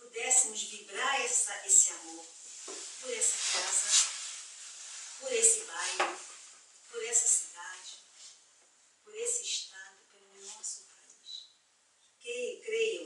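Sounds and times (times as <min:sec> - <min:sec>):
woman talking: 0:00.0 - 0:02.4, 0:03.0 - 0:04.2, 0:05.2 - 0:06.2, 0:06.9 - 0:08.0, 0:09.1 - 0:11.5, 0:12.2 - 0:13.0.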